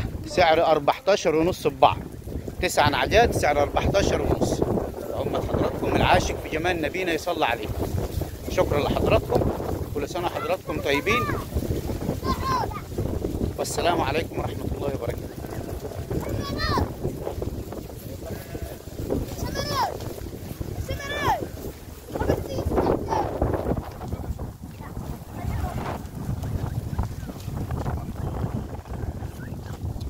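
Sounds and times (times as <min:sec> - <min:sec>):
wind buffeting microphone: 0:00.0 - 0:30.0
sheep bleating: 0:15.2 - 0:16.9, 0:18.0 - 0:19.8.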